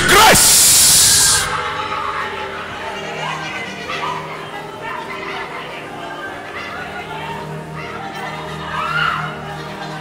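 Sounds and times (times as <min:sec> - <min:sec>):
congregation praying aloud: 0:00.0 - 0:08.2.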